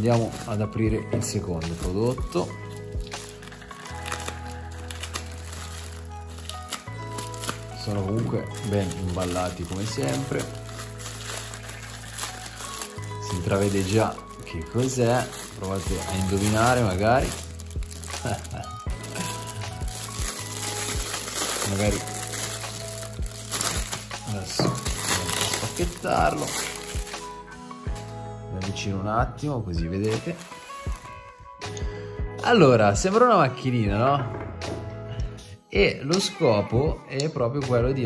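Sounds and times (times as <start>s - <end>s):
plastic bag crinkling: 0.0s - 28.1s, 30.0s - 31.3s
background music low notes: 0.0s - 38.0s.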